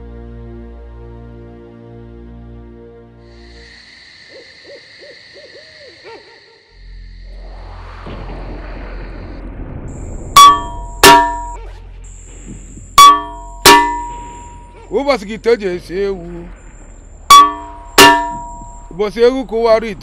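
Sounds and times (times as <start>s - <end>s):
low rumbling night ambience: 0.0s - 5.7s, 6.6s - 20.0s
loud ringing metallic strikes: 10.4s - 11.7s, 13.0s - 14.8s, 17.3s - 19.0s.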